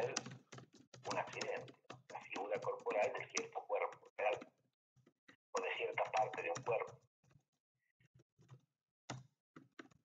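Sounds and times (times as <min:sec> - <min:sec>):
man talking: 0:00.0 - 0:00.2, 0:01.1 - 0:04.4, 0:05.6 - 0:06.9.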